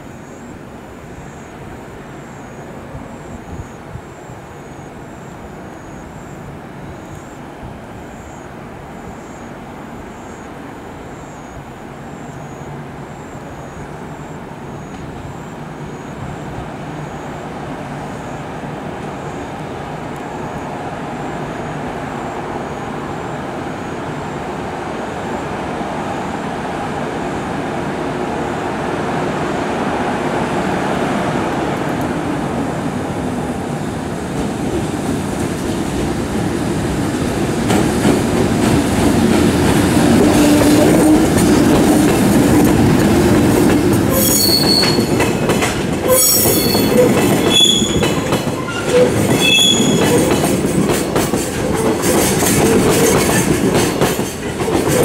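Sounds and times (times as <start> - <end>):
freight train wheels rumbling on rail: 1.6 - 55.0.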